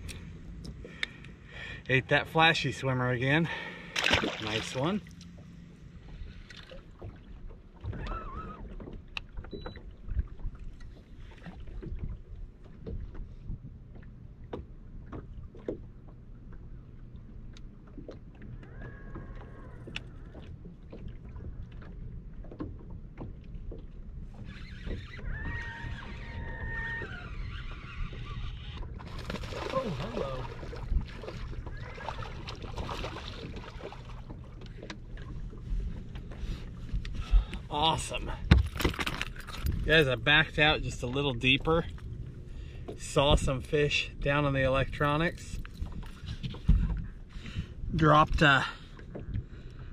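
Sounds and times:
boat low hum: 0.0 - 49.9
water lapping at hull: 0.0 - 49.9
clicks and knocks of fishing gear: 38.4 - 39.9.

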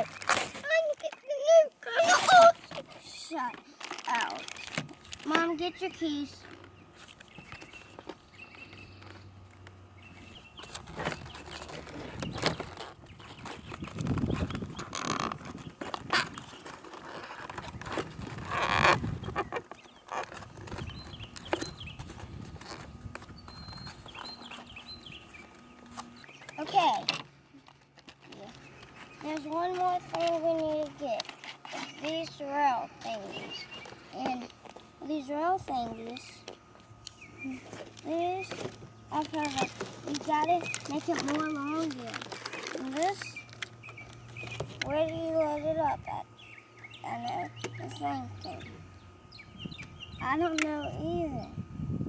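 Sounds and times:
child's voice: 0.0 - 4.5, 5.2 - 6.5, 26.6 - 27.2, 28.2 - 28.6, 29.2 - 33.5, 34.1 - 36.6, 37.4 - 43.4, 44.8 - 46.3, 47.0 - 48.8, 50.2 - 51.6
cardboard packaging tearing: 0.0 - 5.8, 10.6 - 24.9, 37.7 - 44.8.

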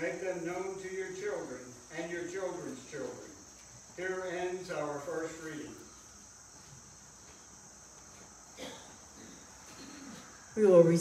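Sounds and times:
crickets chirring: 0.0 - 11.0.

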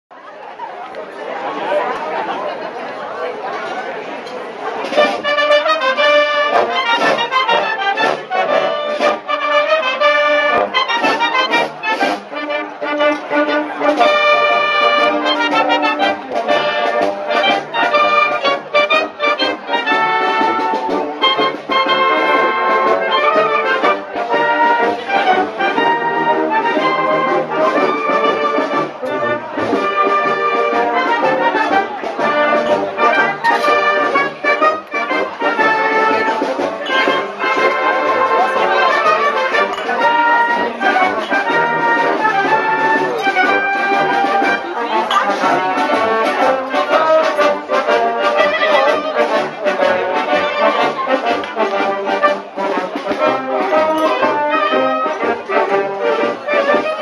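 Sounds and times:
crowd chatter: 0.1 - 57.0
wind band playing: 4.7 - 57.0.

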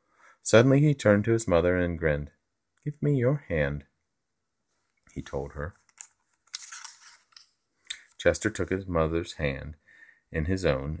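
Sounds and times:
book page turning: 4.8 - 8.6.

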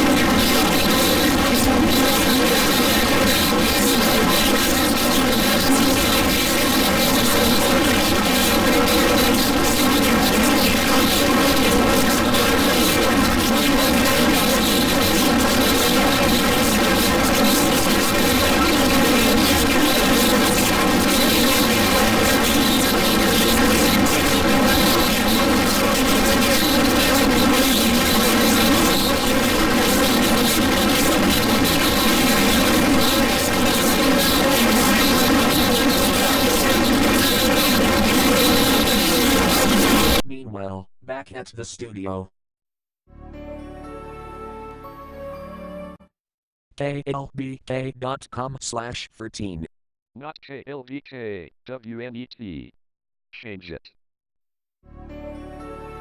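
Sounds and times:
loud buzzing drone: 0.0 - 40.2.

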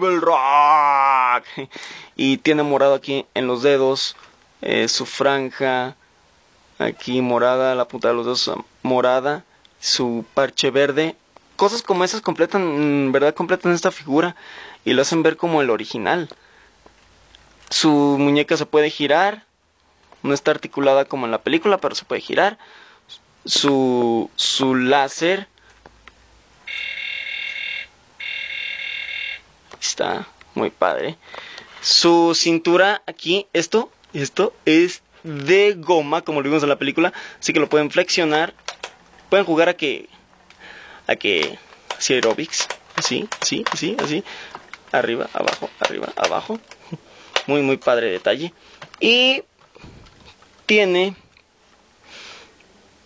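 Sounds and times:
person speaking: 0.0 - 6.0, 6.8 - 16.4, 29.7 - 51.4
person sniffing: 1.5 - 2.2, 40.6 - 41.1, 52.0 - 52.6
electronic buzzing tones: 26.7 - 29.5.

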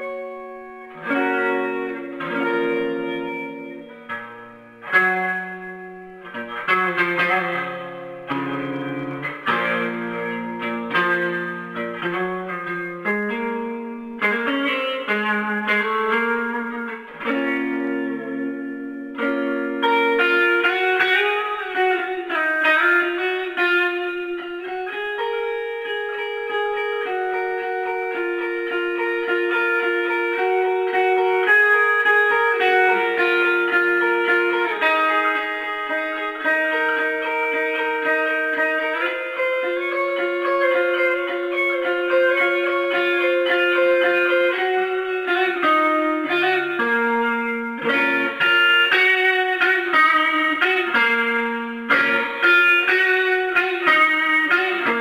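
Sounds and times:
electric guitar solo: 0.0 - 55.0.

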